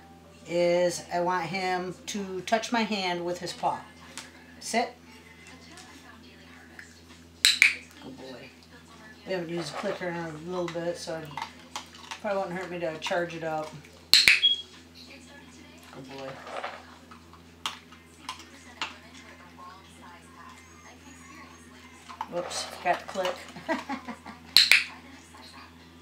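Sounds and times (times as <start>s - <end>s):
dog-training clicker clicks: 7.4s - 7.8s, 14.2s - 14.6s, 24.6s - 24.9s.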